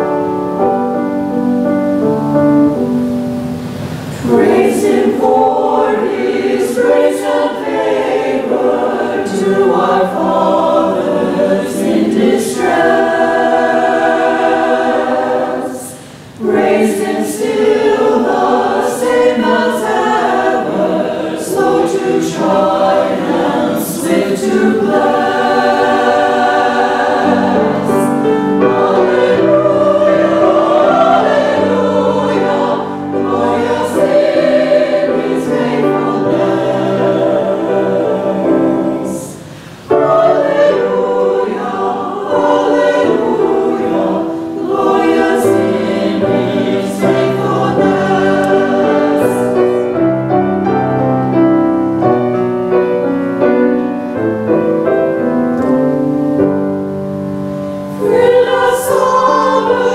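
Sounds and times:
church choir singing: 0.0 - 59.9.

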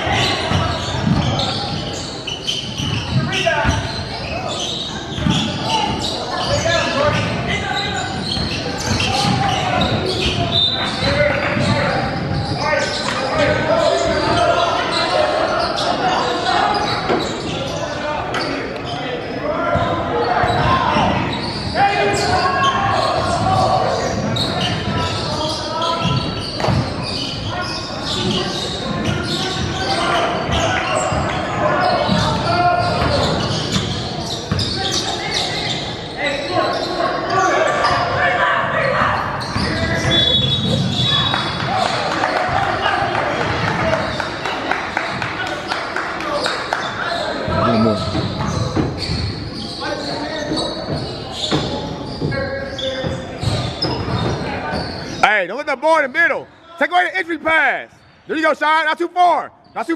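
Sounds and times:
basketball bouncing on hardwood: 1.0 - 1.3.

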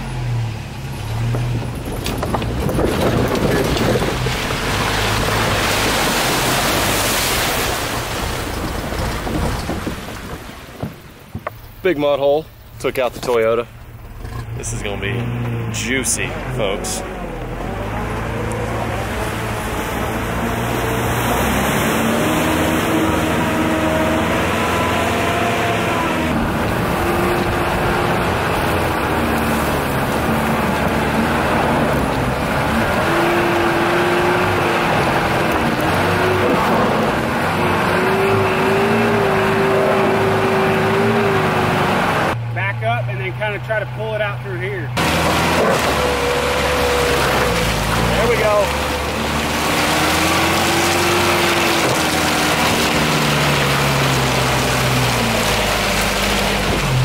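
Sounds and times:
road and wind noise: 0.0 - 57.0
truck engine: 0.0 - 57.0.

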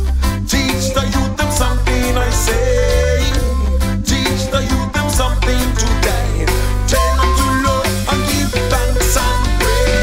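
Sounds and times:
reggae band playing: 0.0 - 10.0
bending lead melody: 0.1 - 10.0.

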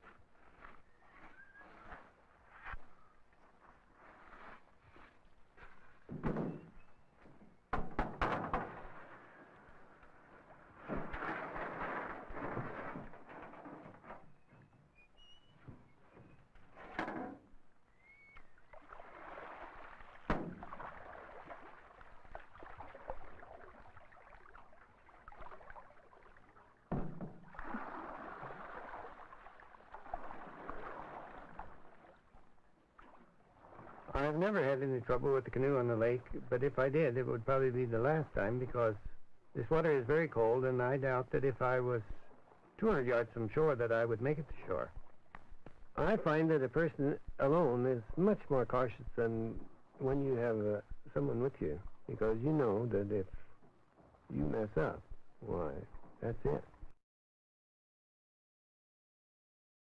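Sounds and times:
paddle strokes splashing: 17.5 - 34.6.

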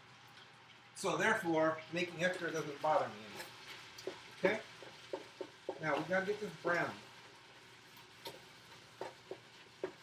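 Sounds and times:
meat sizzling in oil: 0.0 - 10.0.

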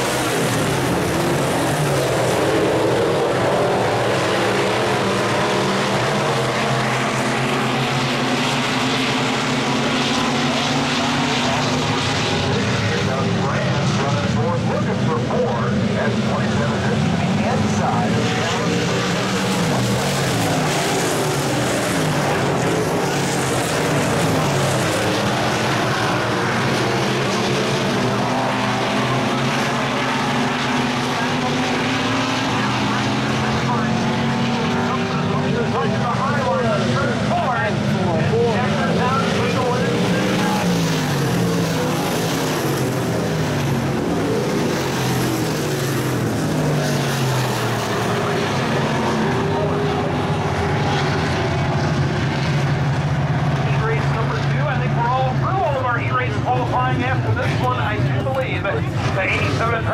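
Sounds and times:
race car engines running hard: 0.0 - 59.9.

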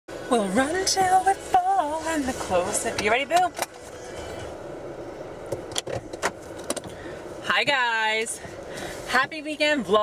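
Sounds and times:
car cabin hum: 0.1 - 10.0.

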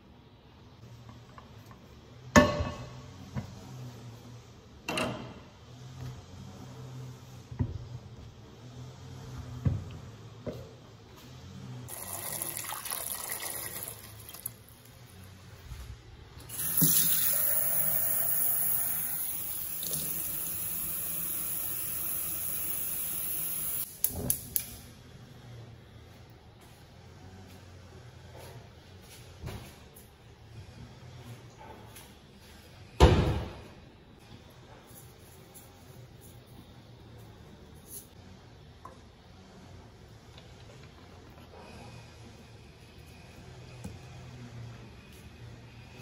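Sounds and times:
water pouring into pot: 11.9 - 14.7.

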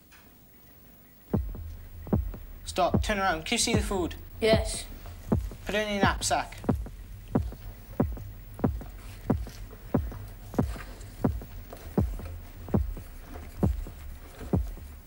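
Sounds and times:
low steady hum: 1.1 - 15.0
heartbeat thumps: 1.3 - 15.0.

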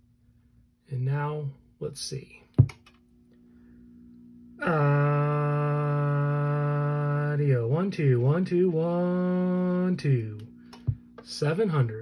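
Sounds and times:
man humming steady tone: 3.6 - 11.1.

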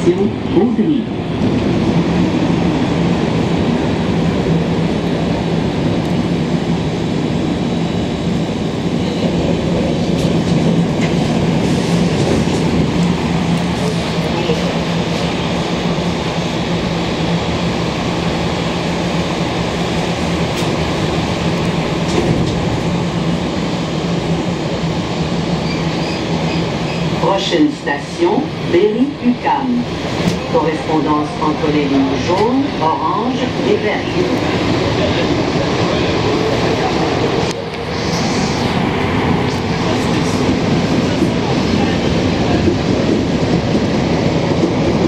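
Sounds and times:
train running through tunnel: 0.0 - 45.0.

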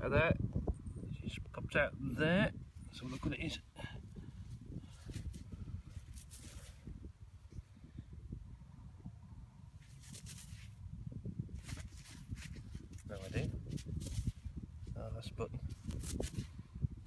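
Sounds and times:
gusty wind rumble on microphone: 0.0 - 17.0.

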